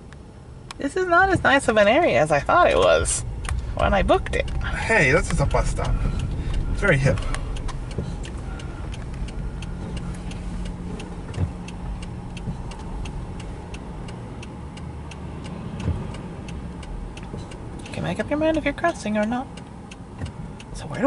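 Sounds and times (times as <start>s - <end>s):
car cabin rumble: 0.0s - 21.0s
turn signal ticking: 0.0s - 21.0s.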